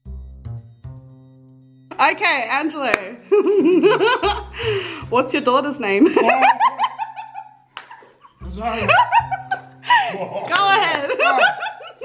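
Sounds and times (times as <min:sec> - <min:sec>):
person laughing: 0:03.2 - 0:04.9, 0:06.0 - 0:12.0.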